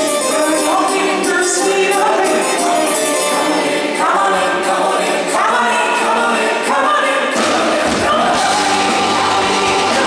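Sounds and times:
choir-like backing voices: 0.0 - 10.0
woman singing lead: 0.0 - 10.0
rock band playing: 7.4 - 10.0.

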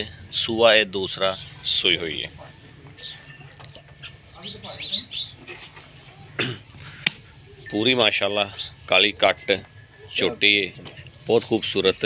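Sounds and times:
small birds chirping: 0.0 - 12.0.

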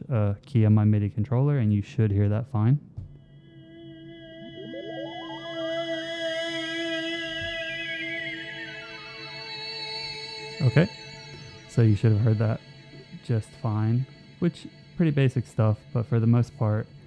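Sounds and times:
synthesizer sustained note: 3.2 - 17.0.

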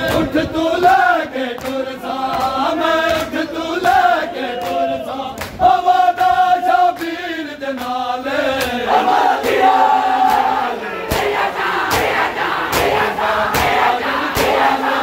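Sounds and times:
men chanting in chorus: 0.0 - 15.0
hands slapping bare chests: 4.6 - 5.6, 10.2 - 14.7.

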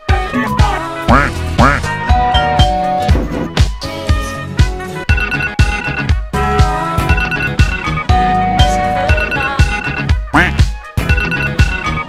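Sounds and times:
electronic house music: 0.1 - 3.7, 5.1 - 12.0.

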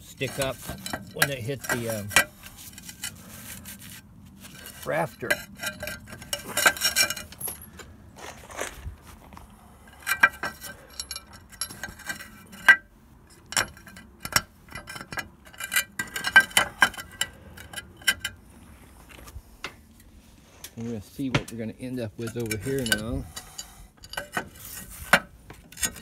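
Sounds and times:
clay roof tiles clinking: 0.0 - 7.9, 9.8 - 18.4, 21.2 - 26.0.

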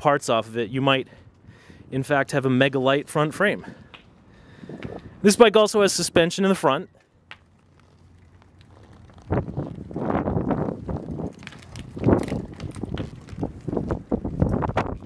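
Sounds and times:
bike parts rattling: 7.0 - 15.0
bike rolling over rough concrete: 7.0 - 15.0.

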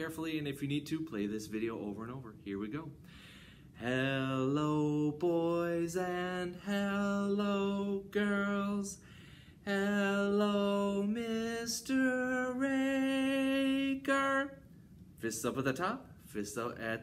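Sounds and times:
man singing unaccompanied: 3.8 - 9.0, 9.6 - 14.6.

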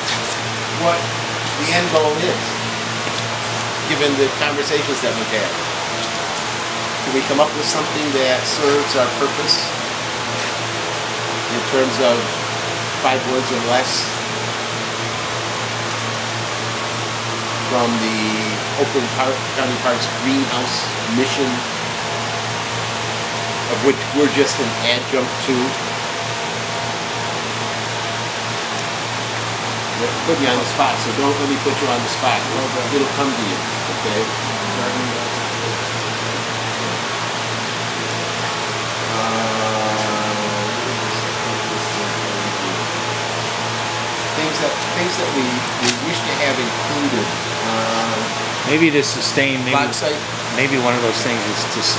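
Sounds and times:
constant low hum: 0.0 - 51.9
rushing fan noise: 0.0 - 51.9.

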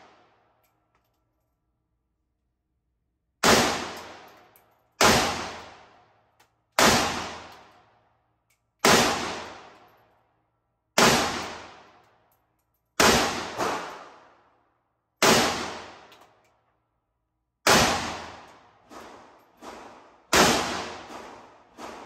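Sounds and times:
rifle shots echoing: 3.4 - 4.3, 5.0 - 6.0, 6.8 - 7.7, 8.8 - 9.8, 11.0 - 12.0, 13.0 - 14.3, 15.2 - 16.1, 17.6 - 22.0.

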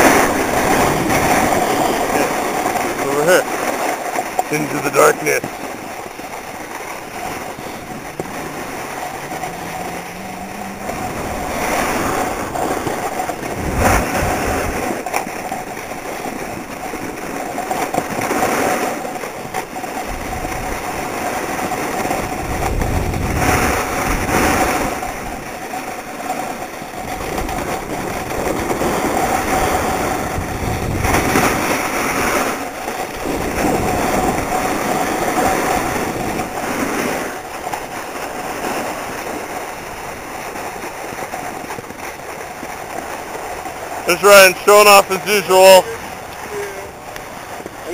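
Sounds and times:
ski edges scraping on packed snow: 0.0 - 47.9
wind rushing over microphone: 0.0 - 47.9.

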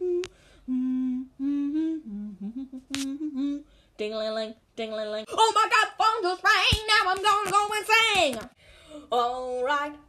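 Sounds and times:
person humming: 0.0 - 3.7.

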